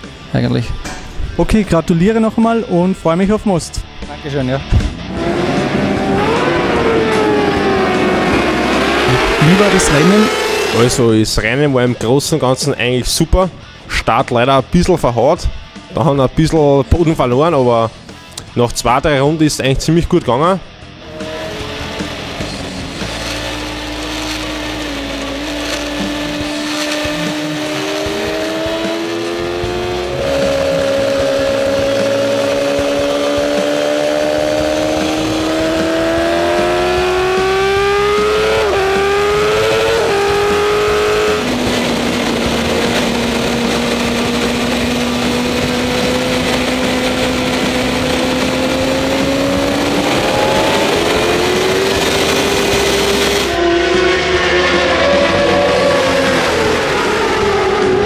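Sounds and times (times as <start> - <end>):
motorcycle engine at full throttle: 3.9 - 11.9, 20.8 - 58.0
rush of wind: 41.5 - 53.6.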